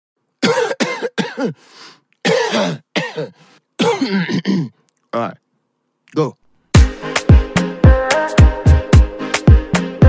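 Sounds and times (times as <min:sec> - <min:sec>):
person coughing: 0:00.4 - 0:01.6, 0:02.2 - 0:04.8
person drawing breath: 0:01.6 - 0:02.1.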